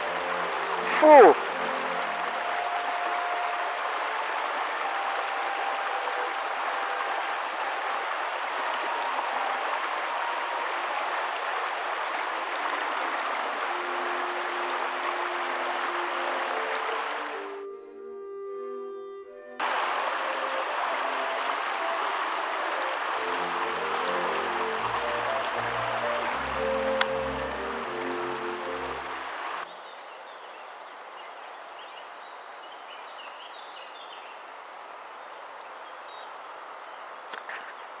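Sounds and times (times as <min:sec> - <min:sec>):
river water over rocks: 0:00.0 - 0:17.6, 0:19.6 - 0:38.0
orchestral string music: 0:00.0 - 0:29.7.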